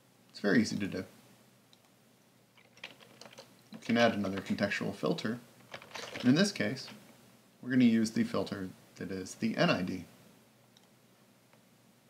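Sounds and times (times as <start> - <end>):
keyboard keys clicking: 2.6 - 4.5, 5.7 - 6.4.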